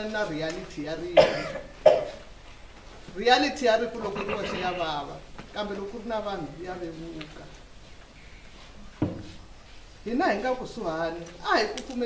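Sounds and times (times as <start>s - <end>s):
woman coughing: 1.2s - 2.2s, 4.1s - 4.9s.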